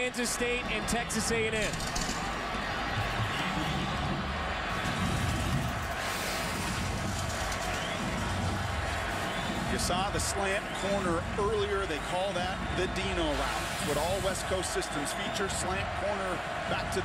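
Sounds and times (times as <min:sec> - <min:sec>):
stadium crowd din: 0:00.0 - 0:17.0.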